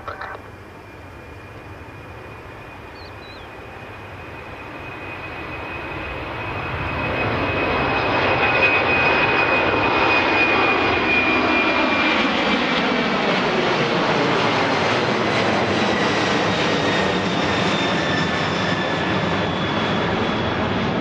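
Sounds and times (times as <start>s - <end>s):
jet engines at takeoff power: 0.0s - 21.0s.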